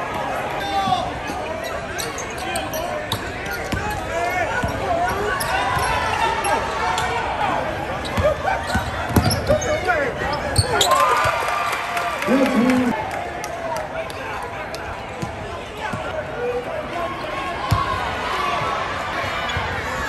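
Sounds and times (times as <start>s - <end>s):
crowd shouting and chattering: 0.0s - 20.0s.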